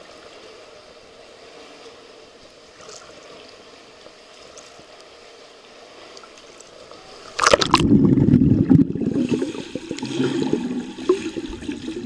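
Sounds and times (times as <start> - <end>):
muffled underwater swimming strokes: 0.4 - 12.0.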